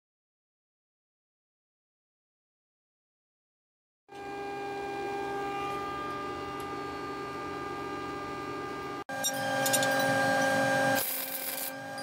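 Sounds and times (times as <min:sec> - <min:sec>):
welder electrical hum: 0:04.1 - 0:12.0.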